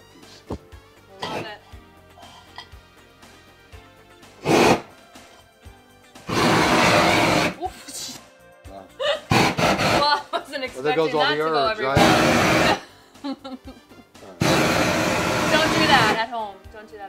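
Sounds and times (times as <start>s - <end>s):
faint background music: 0.0s - 17.0s
kitchen torch rushing bursts: 4.4s - 5.0s, 6.3s - 7.6s, 9.3s - 10.2s, 11.9s - 12.9s, 14.4s - 16.2s.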